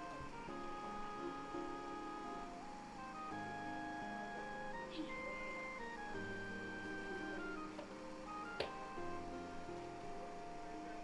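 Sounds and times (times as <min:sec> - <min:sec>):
soft synthesizer notes: 0:00.0 - 0:11.0.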